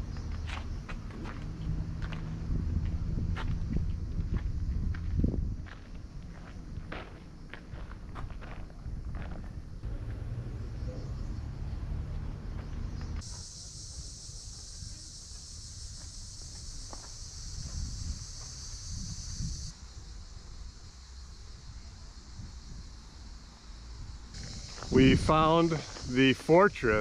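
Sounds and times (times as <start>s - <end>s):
cicadas buzzing: 0.0s - 27.0s.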